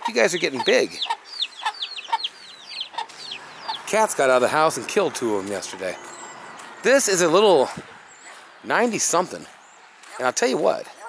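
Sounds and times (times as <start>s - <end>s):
hen clucking: 0.0s - 8.5s
baby chicks peeping: 0.0s - 10.8s.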